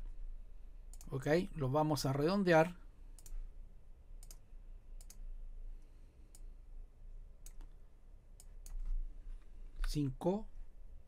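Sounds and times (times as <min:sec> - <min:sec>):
faint low hum: 0:00.0 - 0:11.0
computer mouse clicking: 0:00.9 - 0:01.2, 0:03.2 - 0:03.4, 0:04.2 - 0:04.4, 0:05.0 - 0:05.2, 0:07.4 - 0:07.8, 0:08.4 - 0:08.9.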